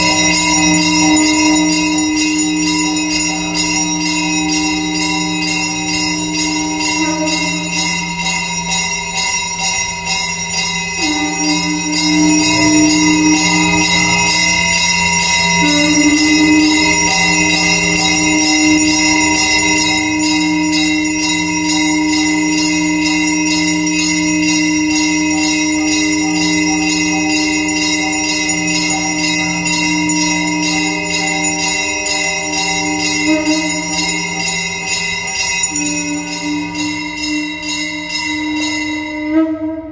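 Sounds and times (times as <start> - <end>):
brass hand bell ringing: 0.0 - 39.9
droning tones: 0.0 - 39.9.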